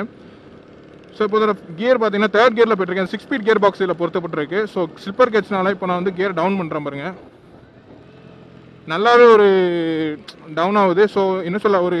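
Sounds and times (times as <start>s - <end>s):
rider speaking: 0.0s - 8.0s, 8.6s - 12.0s
motorcycle engine running: 0.0s - 12.0s
road noise: 0.0s - 12.0s.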